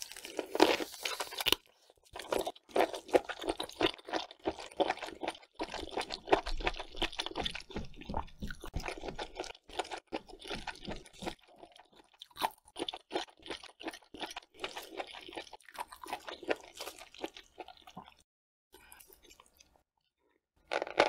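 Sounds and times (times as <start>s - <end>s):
crunchy wet chewing: 0.0s - 18.2s.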